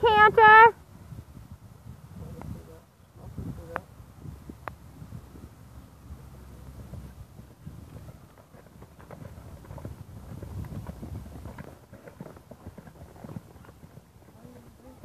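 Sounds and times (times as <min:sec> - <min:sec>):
horse hoofbeats on sand: 0:06.8 - 0:15.0.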